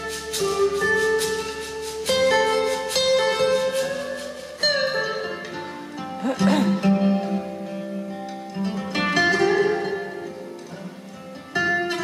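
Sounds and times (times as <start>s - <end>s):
acoustic guitars picking: 0.0s - 12.0s.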